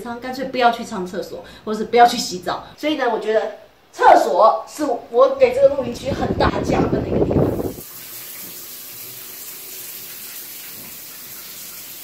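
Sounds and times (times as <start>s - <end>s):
shower water spraying on tiles: 7.4s - 12.0s.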